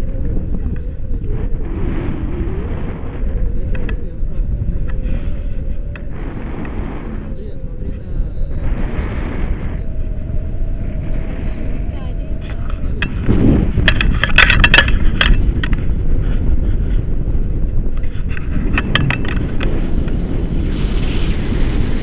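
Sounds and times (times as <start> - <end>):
wind buffeting microphone: 0.0 - 22.0
sharp crackling clicks: 5.9 - 7.4, 12.4 - 16.0, 17.9 - 22.0.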